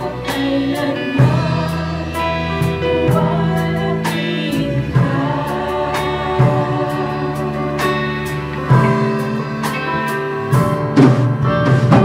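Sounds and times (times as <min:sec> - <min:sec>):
women singing together: 0:00.0 - 0:08.2
drum and cymbal hits: 0:00.0 - 0:12.0
guitars playing: 0:00.0 - 0:12.0.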